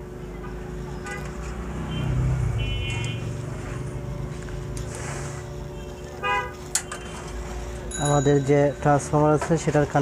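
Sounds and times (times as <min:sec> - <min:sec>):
street traffic noise: 0:00.0 - 0:10.0
low hum: 0:00.7 - 0:08.0
vehicle horn toot: 0:01.0 - 0:03.3, 0:05.8 - 0:07.2.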